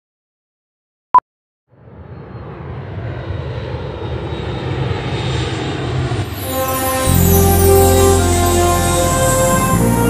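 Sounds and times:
jet airliner engines rumbling: 0:01.7 - 0:10.0.

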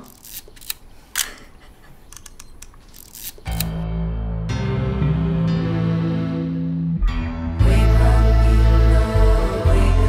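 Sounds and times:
light mechanical clicks: 0:00.0 - 0:03.8
camera shutter click: 0:02.2 - 0:03.8
music with sustained low notes: 0:03.5 - 0:10.0.

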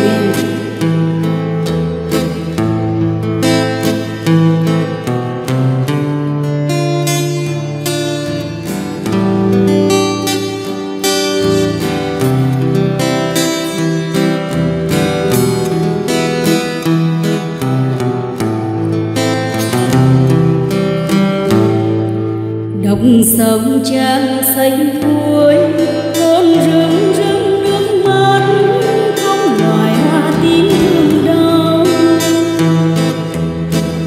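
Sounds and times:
acoustic guitar picked melody: 0:00.0 - 0:34.0.

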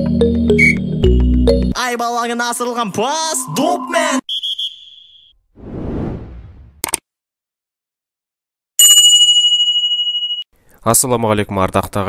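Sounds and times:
bell-like ding: 0:08.8 - 0:10.5.

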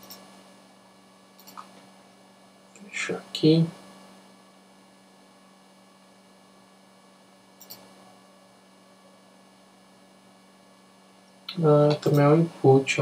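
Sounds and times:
computer mouse double click: 0:00.0 - 0:00.2, 0:07.6 - 0:07.8
mains hum: 0:00.0 - 0:13.0.

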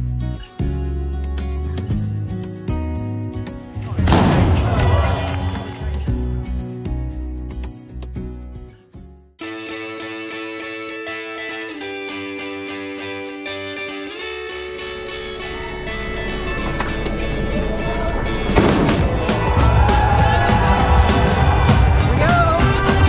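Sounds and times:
background music with chords: 0:00.0 - 0:17.6, 0:18.4 - 0:23.0
people cheering: 0:03.8 - 0:06.5, 0:17.6 - 0:23.0
crowd noise: 0:03.8 - 0:06.8, 0:15.1 - 0:23.0
sudden loud burst: 0:04.0 - 0:05.5.

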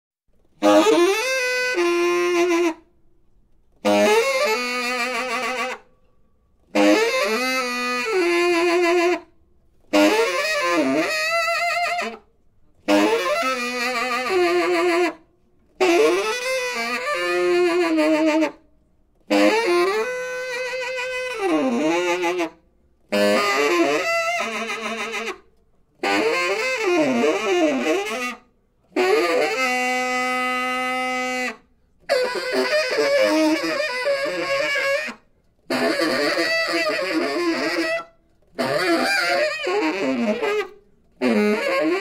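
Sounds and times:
solo saxophone free jazz: 0:00.4 - 0:03.0, 0:03.7 - 0:05.9, 0:06.6 - 0:42.0.

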